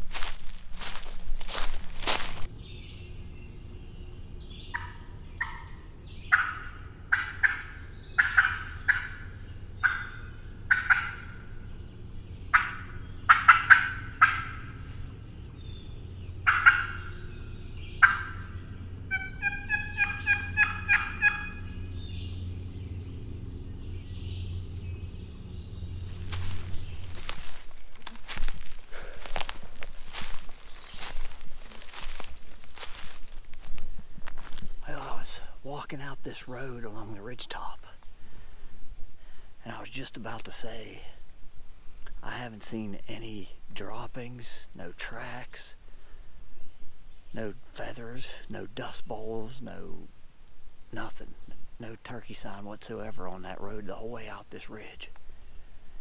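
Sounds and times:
footsteps in leaf litter: 0.0 - 2.5, 25.8 - 35.0
turkey clucking: 4.6 - 11.8, 12.4 - 15.3, 16.4 - 23.4.

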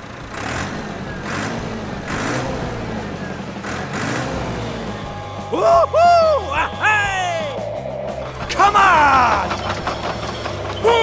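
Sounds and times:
heavy vehicle engine rumble: 0.0 - 11.0.

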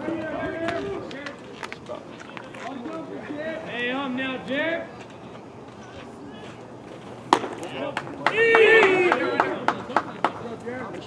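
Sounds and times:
baseball smacking into leather mitt: 7.3 - 8.4.

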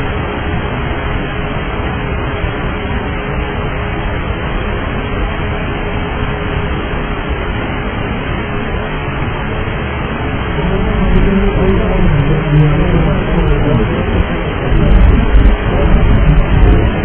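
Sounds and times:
faint steady hum: 0.0 - 17.0
aircraft cabin rushing noise: 10.2 - 17.0
low pitched tone: 10.2 - 17.0.

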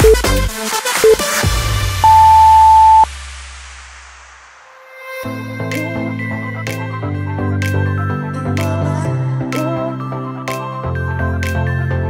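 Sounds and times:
high-pitched timer beep: 0.0 - 0.2, 2.0 - 3.1
dance music track: 0.0 - 3.0.

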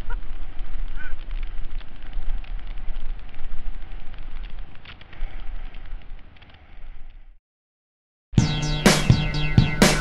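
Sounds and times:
bike rattle and crunch: 0.0 - 7.4
wind rumble on microphone: 0.0 - 7.4.

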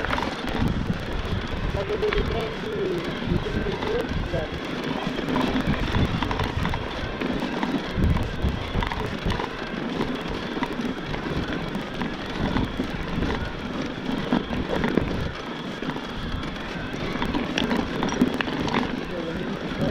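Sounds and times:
bike clicks and rattles: 0.0 - 19.9
tyres crunching on dirt and rock: 0.0 - 19.9
wind rumble on microphone: 0.0 - 19.9.

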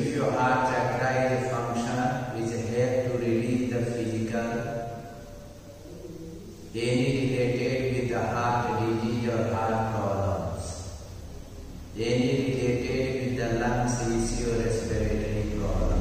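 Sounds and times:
man chanting in held notes: 0.0 - 16.0.

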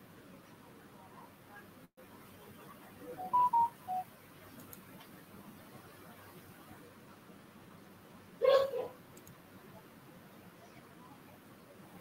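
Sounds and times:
electronic chime tune: 3.2 - 4.0.

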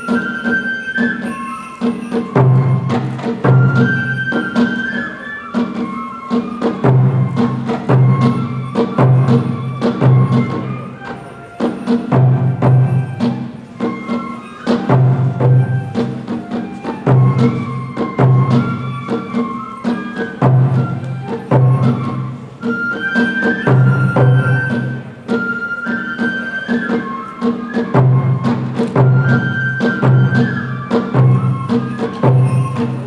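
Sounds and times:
bamboo flute melody: 0.0 - 33.0
heavy drum strokes: 0.0 - 33.0.

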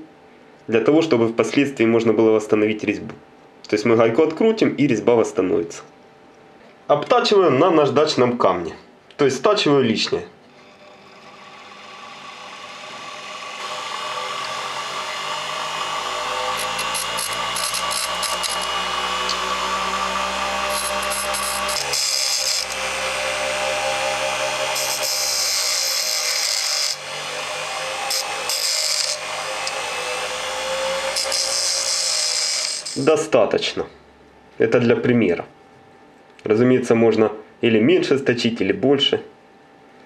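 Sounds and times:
metal grinding on stone wheel: 10.5 - 33.0
bench grinder motor whining: 10.5 - 33.1.

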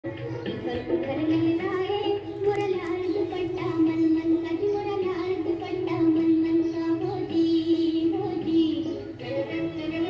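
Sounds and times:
high voice singing: 0.1 - 10.0
musical accompaniment: 0.1 - 10.0.

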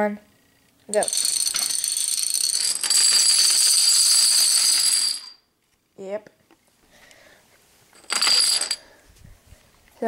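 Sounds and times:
plastic dominoes clattering: 0.9 - 5.4, 8.0 - 8.8.

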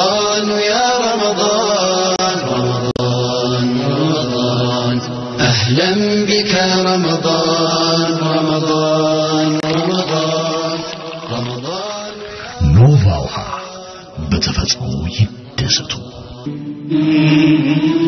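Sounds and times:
man chanting: 0.0 - 18.0.

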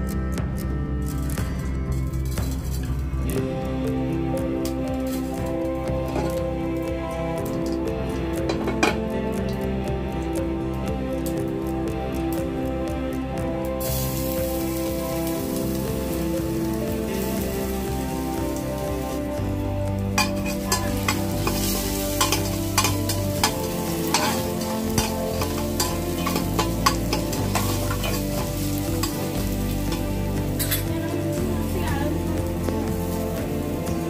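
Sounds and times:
oil crackling and popping: 13.8 - 30.9
food sizzling in hot oil: 13.8 - 34.0.

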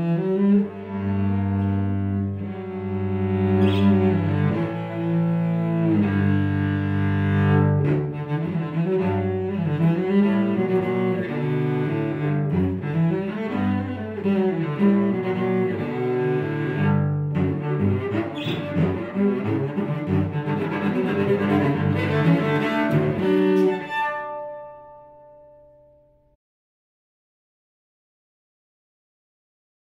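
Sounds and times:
bowed cello: 0.0 - 26.0.

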